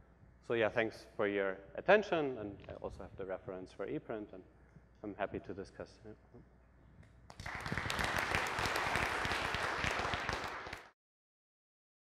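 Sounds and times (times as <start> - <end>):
audience applause: 7.4 - 11.0.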